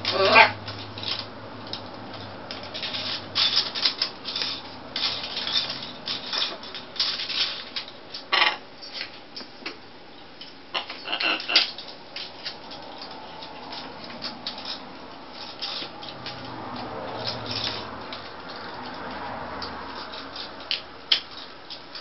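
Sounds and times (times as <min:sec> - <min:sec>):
beaks scraping plastic bracelets: 0:00.0 - 0:09.2, 0:10.4 - 0:22.0.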